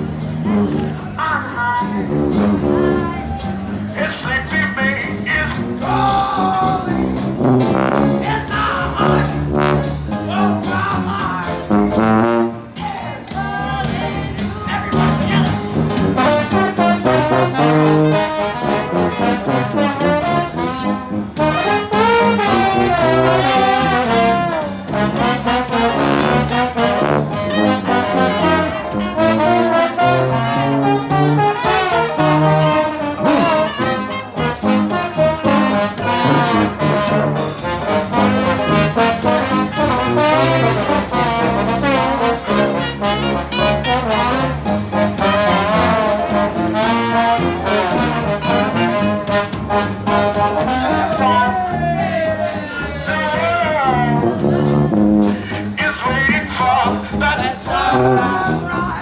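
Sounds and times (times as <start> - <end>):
bass line: 0.0 - 59.0
drums: 0.0 - 59.0
trombone: 0.0 - 59.0
trumpet: 0.0 - 59.0.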